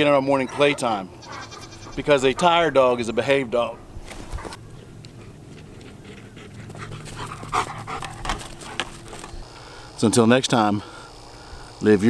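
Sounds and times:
dog panting hard: 0:00.3 - 0:03.0, 0:05.2 - 0:09.2.

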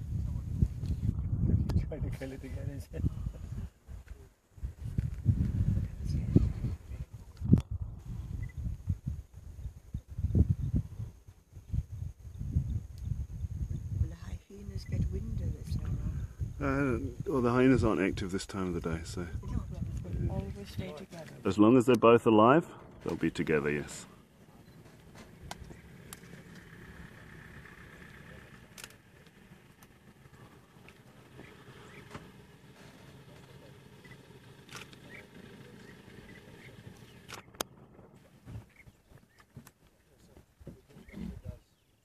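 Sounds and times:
low rumble: 0:04.6 - 0:18.2.

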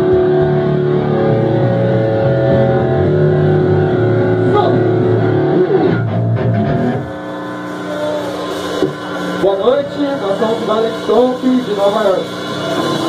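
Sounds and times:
distorted electric guitar chords: 0:00.0 - 0:13.0.

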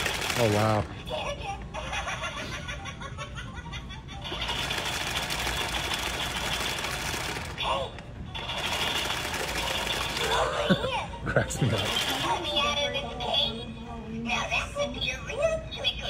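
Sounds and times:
rapid mechanical rattle: 0:00.0 - 0:00.9, 0:04.2 - 0:10.6, 0:11.6 - 0:12.7.

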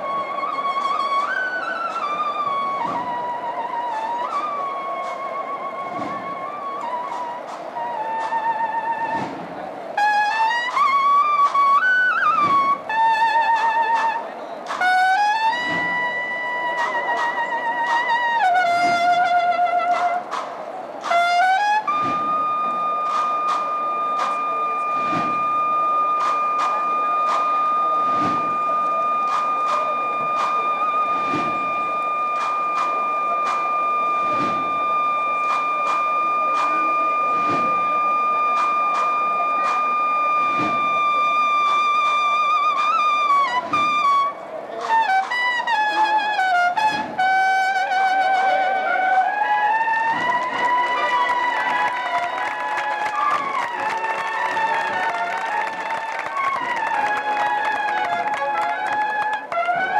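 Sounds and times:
cornets playing: 0:00.0 - 0:59.9
steady drum strokes: 0:18.6 - 0:41.9.

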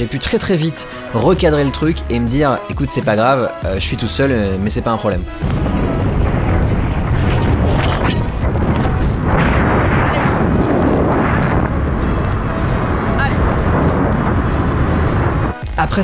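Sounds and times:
background music: 0:00.0 - 0:16.0
wind rushing over microphone: 0:04.4 - 0:16.0
road and engine noise: 0:05.2 - 0:15.8.

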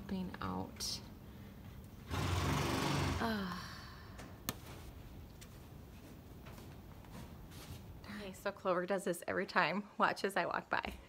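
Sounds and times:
woman groaning: 0:03.2 - 0:03.9.

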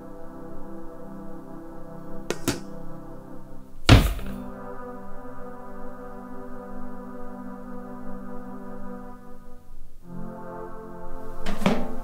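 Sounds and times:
ambient music drone: 0:00.0 - 0:12.0
sharp knocks: 0:02.3 - 0:02.7, 0:03.9 - 0:04.4
heavy deep thud: 0:03.9 - 0:04.5.

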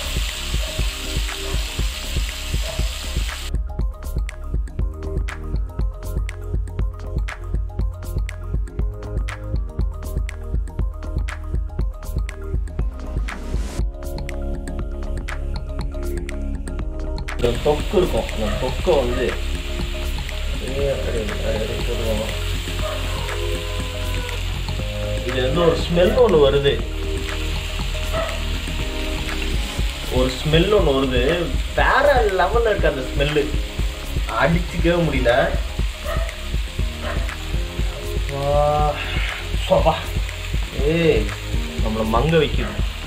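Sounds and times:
fish frying in oil: 0:00.0 - 0:03.6, 0:17.4 - 0:43.0
background music with voice: 0:00.0 - 0:43.0.

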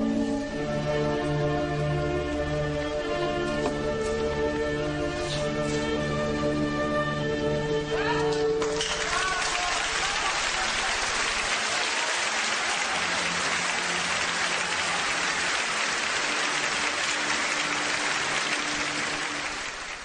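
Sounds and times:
audience applauding: 0:08.6 - 0:20.0.

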